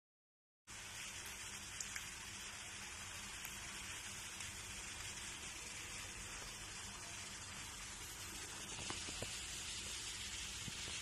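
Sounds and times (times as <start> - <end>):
pasta sizzling in a frying pan: 0.7 - 11.0.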